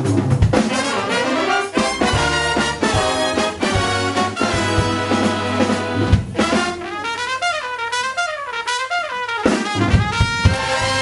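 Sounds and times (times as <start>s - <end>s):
jazz big band playing: 0.0s - 11.0s
brass horn melody: 0.6s - 11.0s.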